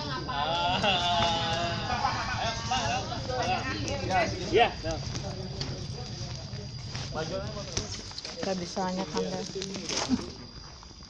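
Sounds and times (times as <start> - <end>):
people talking: 0.0 - 10.5.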